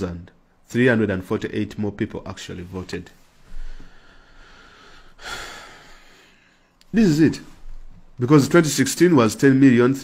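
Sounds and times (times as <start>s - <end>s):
man speaking: 0.0s - 3.2s, 6.8s - 10.0s
man inhaling sharply: 3.5s - 6.8s.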